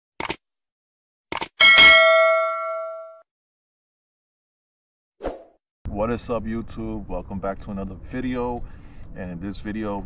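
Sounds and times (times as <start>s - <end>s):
bright bell ding: 1.6s - 3.2s.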